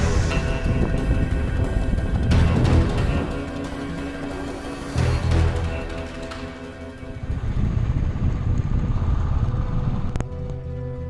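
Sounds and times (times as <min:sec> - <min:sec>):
motorcycle engine rumble: 0:00.0 - 0:11.0
music with held tones: 0:00.0 - 0:11.0.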